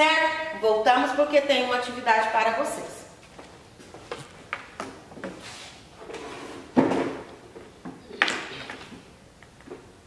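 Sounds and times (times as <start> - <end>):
chair scraping and knocking: 5.2 - 9.0.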